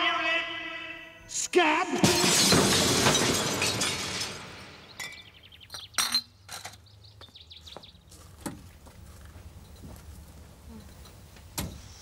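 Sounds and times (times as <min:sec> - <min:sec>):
man shouting: 0:00.0 - 0:02.4
window glass smashing: 0:02.0 - 0:05.4
glass shards tinkling: 0:02.0 - 0:06.3.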